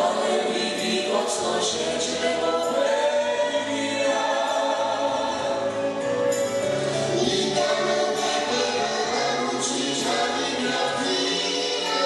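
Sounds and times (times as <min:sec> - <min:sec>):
musical accompaniment: 0:00.0 - 0:12.0
girl singing: 0:07.1 - 0:12.0.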